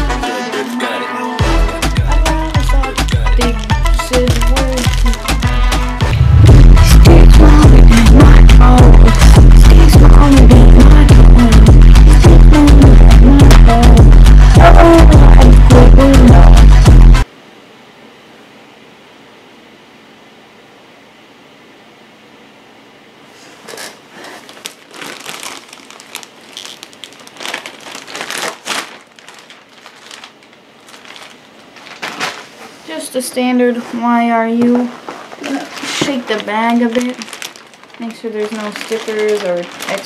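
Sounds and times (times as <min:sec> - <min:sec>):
music with heavy beat and vocals: 0:00.0 - 0:17.2
packaging crinkling and rustling: 0:02.5 - 0:05.6, 0:23.6 - 0:32.9, 0:34.7 - 0:40.0.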